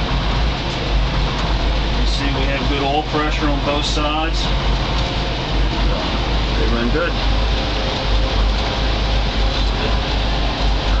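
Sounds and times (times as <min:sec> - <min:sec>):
marine diesel engines running: 0:00.0 - 0:11.0.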